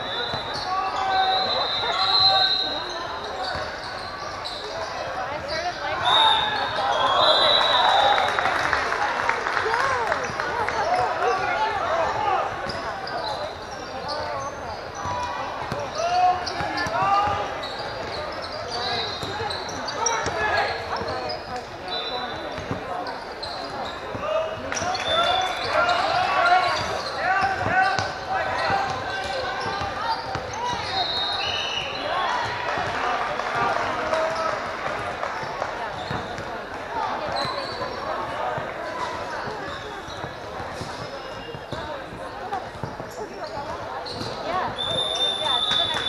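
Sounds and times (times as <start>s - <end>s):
sneaker squeaks: 0.0s - 8.4s, 10.3s - 32.9s, 35.3s - 46.0s.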